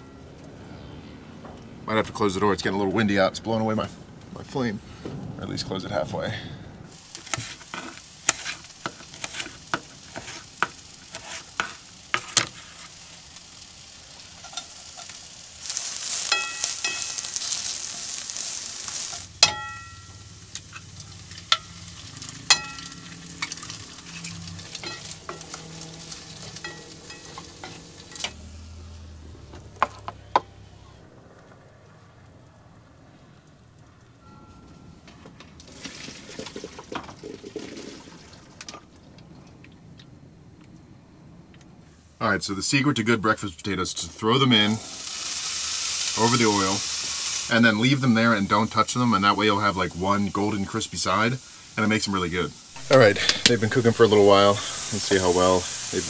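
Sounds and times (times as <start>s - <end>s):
food sizzling in hot oil: 6.9s - 30.0s, 43.6s - 56.0s
metal utensil clinking on pan: 16.2s - 17.5s, 19.4s - 25.7s, 26.3s - 28.4s.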